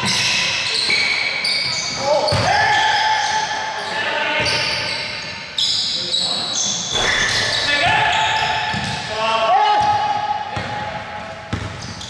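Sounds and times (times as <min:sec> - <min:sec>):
sneakers squeaking on court: 0:00.0 - 0:09.1, 0:09.8 - 0:12.0
basketball bouncing on gym floor: 0:02.3 - 0:02.7, 0:06.9 - 0:09.0, 0:09.8 - 0:12.0.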